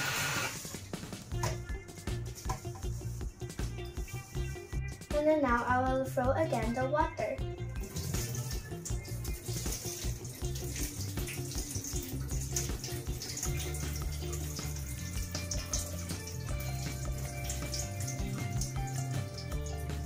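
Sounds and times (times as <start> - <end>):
background music with bass: 0.0 - 20.0
water trickling into sink: 7.7 - 20.0.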